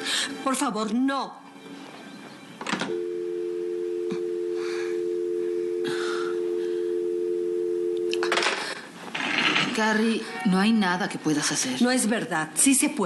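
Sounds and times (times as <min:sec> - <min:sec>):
two-note dial tone: 0:02.9 - 0:08.4.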